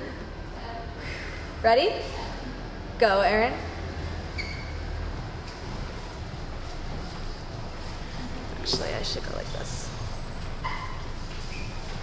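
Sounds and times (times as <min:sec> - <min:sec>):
brief high squeak: 0:04.3 - 0:04.8, 0:10.2 - 0:11.8.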